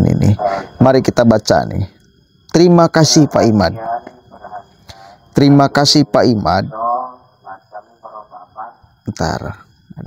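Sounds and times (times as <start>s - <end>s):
thin high whine: 0.0s - 10.0s
man's voice over loudspeaker: 2.6s - 4.1s.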